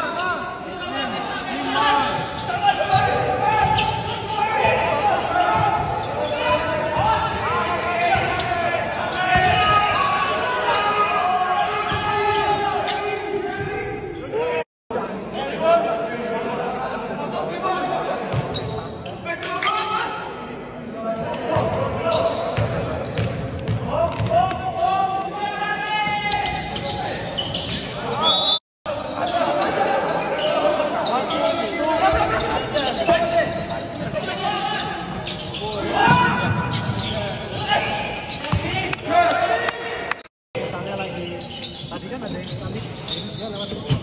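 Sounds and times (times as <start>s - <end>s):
players shouting: 1.3s - 14.6s, 23.8s - 30.9s.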